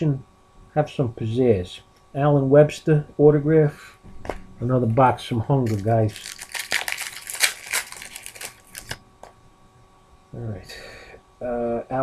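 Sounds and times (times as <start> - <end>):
cards and wrapper crinkling: 5.6 - 9.0.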